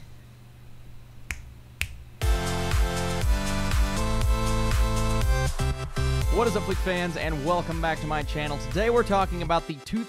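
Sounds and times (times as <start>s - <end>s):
finger snaps: 1.2s - 2.1s.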